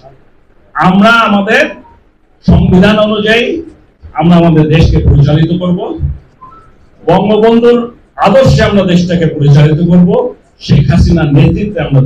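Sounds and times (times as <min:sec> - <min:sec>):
man speaking through a microphone: 0:00.0 - 0:06.3, 0:07.0 - 0:12.0
faint whistle-like tone: 0:06.4 - 0:06.8.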